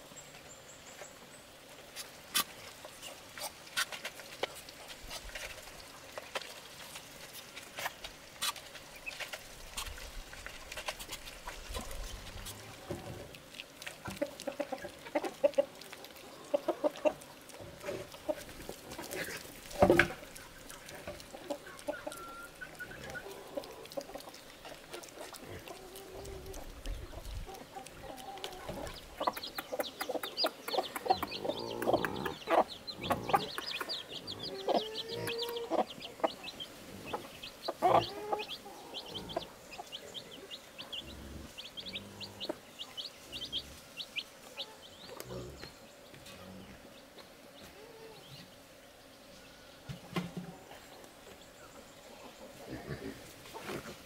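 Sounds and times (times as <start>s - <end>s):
hens clucking: 7.8s - 54.0s.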